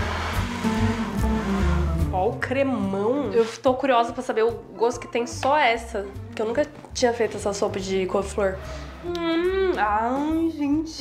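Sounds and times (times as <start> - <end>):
blender motor running: 0.0 - 2.1
background music: 0.0 - 11.0.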